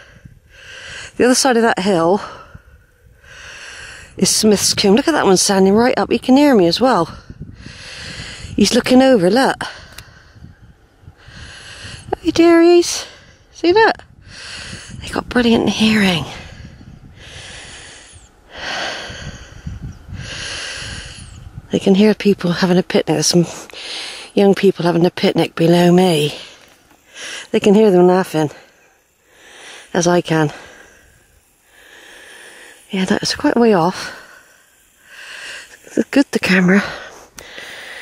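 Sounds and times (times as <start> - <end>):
person breathing heavily: 0.0 - 1.2, 2.2 - 4.2, 7.1 - 8.6, 9.6 - 12.2, 14.1 - 15.0, 16.2 - 21.6, 23.4 - 24.4, 26.2 - 27.6, 28.5 - 38.0.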